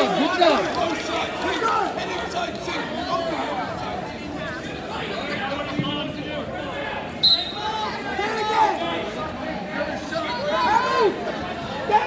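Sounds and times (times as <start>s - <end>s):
chatter of voices: 0.0s - 12.0s
referee's whistle blast: 7.2s - 7.7s.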